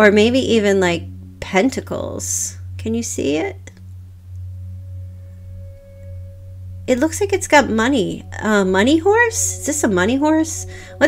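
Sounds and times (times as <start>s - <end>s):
woman speaking: 0.0s - 3.7s, 6.9s - 11.0s
faint ringing tone: 0.0s - 11.0s
steady low hum: 0.0s - 11.0s.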